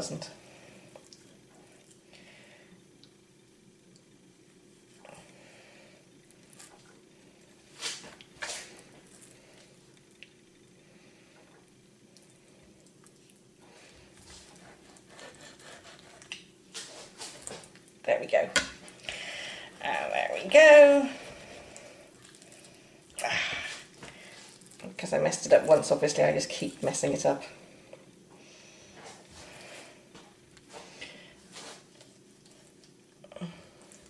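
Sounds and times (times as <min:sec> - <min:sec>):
knife scraping fish skin: 0:14.3 - 0:16.4.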